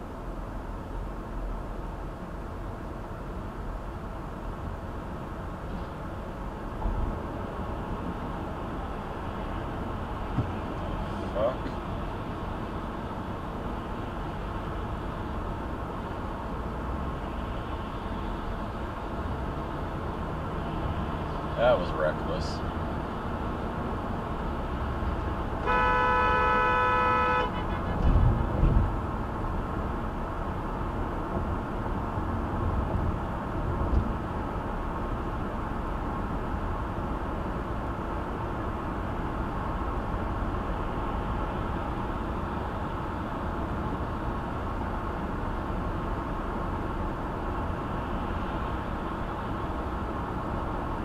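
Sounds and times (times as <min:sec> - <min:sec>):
car road noise: 0:00.0 - 0:51.0
vehicle horn blast: 0:25.6 - 0:28.0.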